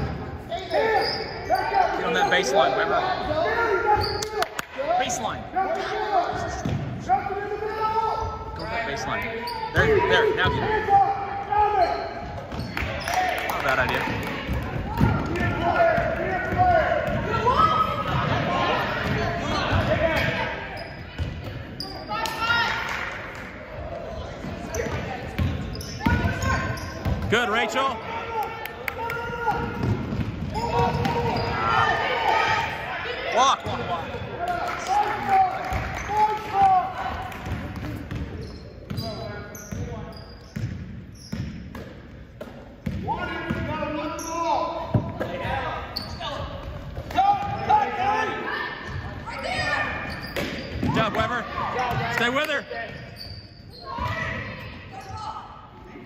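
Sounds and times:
basketball bouncing on wooden floor: 29.5s - 31.4s.

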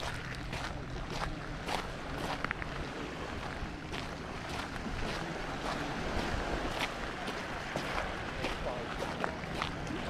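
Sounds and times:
footsteps crunching on shingle: 0.0s - 9.8s
small waves lapping: 0.0s - 10.0s
wind buffeting microphone: 0.0s - 10.0s.

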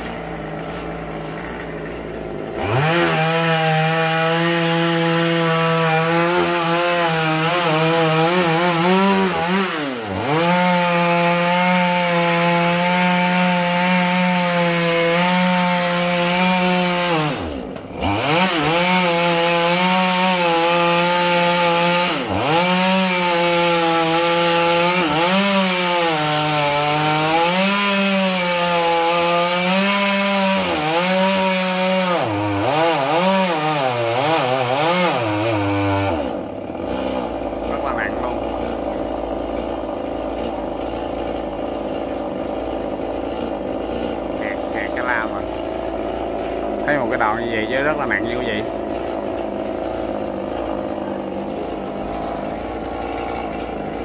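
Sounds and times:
chainsaw cutting through trunk: 0.0s - 54.0s.

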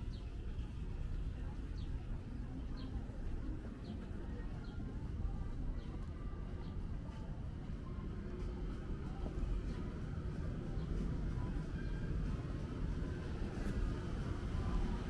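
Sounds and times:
faint voices of passers-by: 0.0s - 15.0s
low rumble of city: 0.0s - 15.0s.

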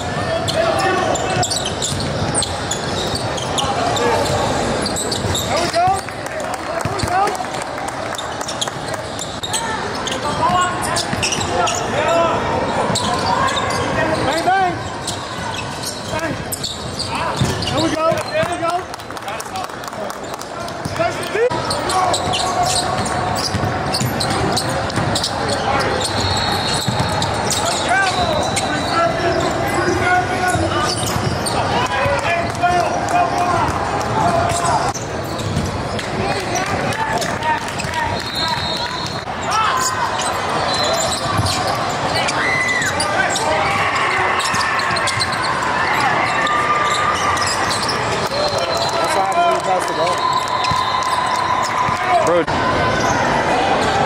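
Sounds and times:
players' voices and shouts: 0.0s - 54.0s.

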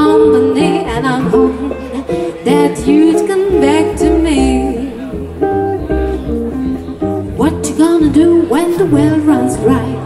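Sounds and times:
jazz guitar single notes: 0.0s - 10.0s
plucked double bass: 0.0s - 10.0s.

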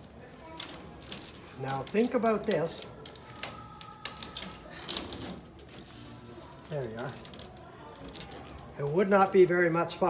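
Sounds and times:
wire-mesh basket clicking and rattling: 0.0s - 5.8s, 6.6s - 9.1s.

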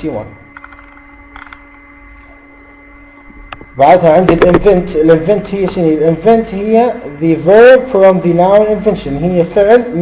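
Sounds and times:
faint high whine: 0.0s - 10.0s
steady low hum: 0.0s - 10.0s.

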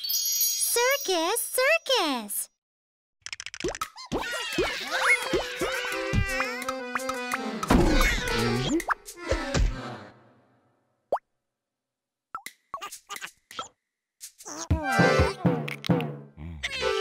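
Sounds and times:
playful cartoon music: 3.6s - 10.3s, 12.4s - 17.0s.

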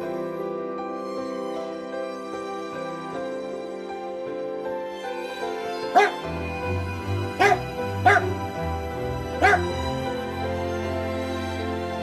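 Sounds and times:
background music: 0.0s - 12.0s
dog yipping: 6.0s - 6.2s, 7.4s - 8.4s, 9.4s - 9.8s.

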